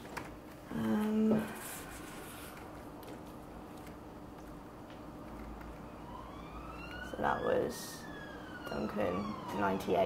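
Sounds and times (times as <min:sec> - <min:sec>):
low room hum: 0:00.0 - 0:10.0
faint siren wail: 0:05.5 - 0:10.0.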